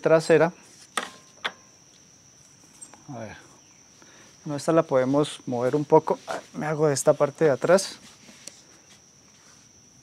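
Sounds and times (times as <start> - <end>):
cricket chirring: 0.0 - 10.0.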